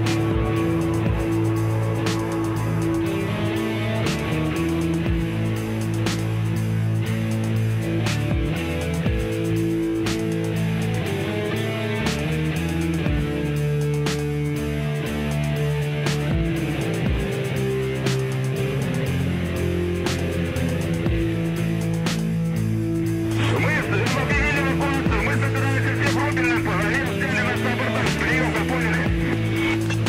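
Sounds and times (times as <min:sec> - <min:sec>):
background music with low notes: 0:00.0 - 0:30.0
person speaking: 0:23.3 - 0:29.9.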